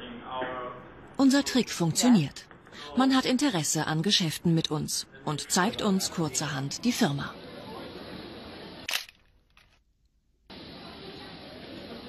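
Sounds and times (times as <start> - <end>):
steady background noise: 0.0 - 12.0
sharp click: 8.9 - 9.2.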